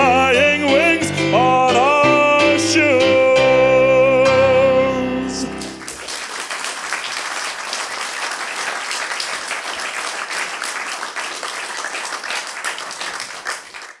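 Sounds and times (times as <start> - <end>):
audience clapping: 5.5 - 14.0.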